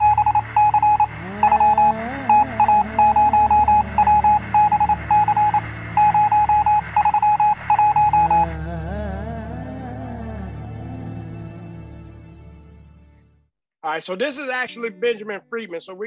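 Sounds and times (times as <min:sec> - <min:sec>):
morse code electronic beeps: 0:00.0 - 0:08.5
slow gliding background music: 0:07.4 - 0:13.0.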